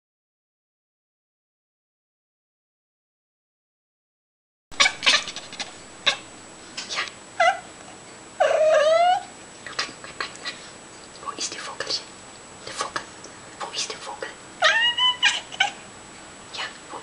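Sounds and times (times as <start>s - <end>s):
cat clicking and chirping: 4.8s - 6.2s
cat meowing: 4.8s - 6.2s, 8.4s - 9.3s, 14.6s - 15.8s.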